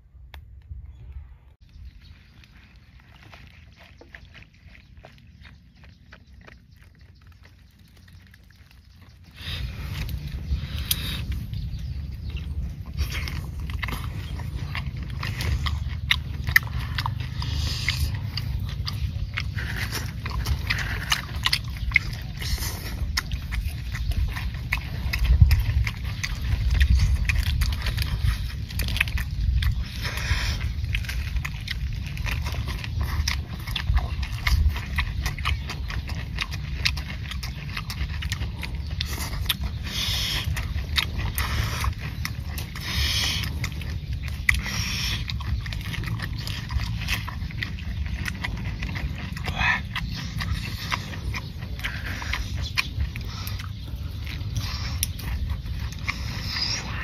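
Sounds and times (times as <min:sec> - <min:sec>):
chewing and crunching: 0:00.0 - 0:57.0
small wet clicks: 0:01.6 - 0:57.0.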